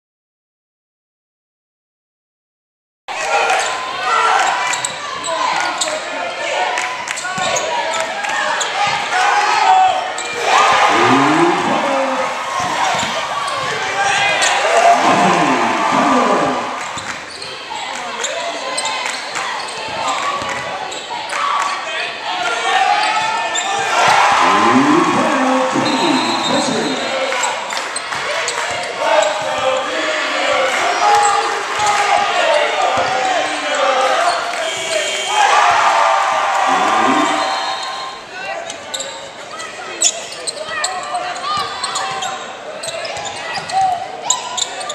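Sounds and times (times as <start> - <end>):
indistinct voices echoing: 10.5 - 13.1, 13.9 - 17.1, 23.7 - 27.6, 36.5 - 37.8.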